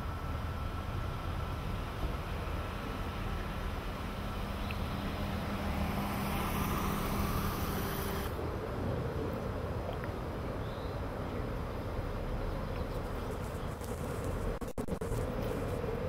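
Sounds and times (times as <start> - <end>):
hiss: 4.8 - 8.3.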